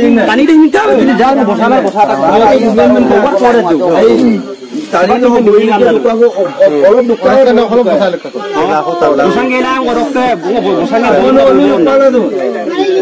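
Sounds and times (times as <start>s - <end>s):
loud voices talking: 0.0s - 13.0s.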